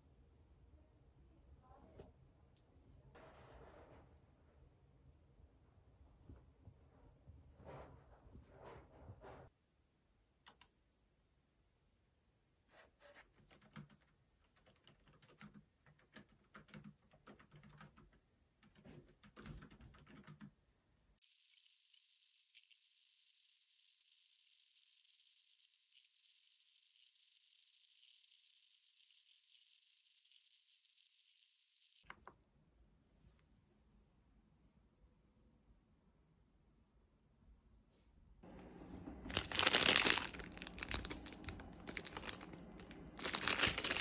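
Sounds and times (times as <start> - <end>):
laptop keyboard typing: 13.2 - 20.6
steady thin hiss: 21.2 - 32.1.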